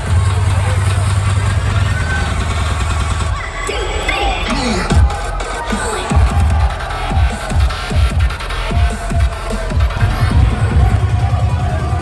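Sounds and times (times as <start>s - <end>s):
loud bass drone: 0.0s - 3.4s, 6.2s - 12.0s
electronic dance music: 0.0s - 12.0s.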